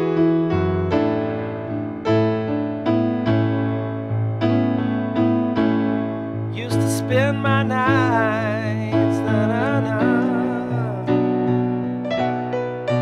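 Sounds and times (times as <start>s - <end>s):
slow bluesy piano: 0.0s - 13.0s.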